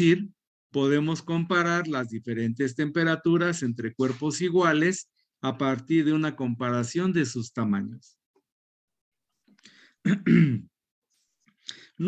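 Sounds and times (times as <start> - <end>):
man clearing his throat: 10.0 - 10.7.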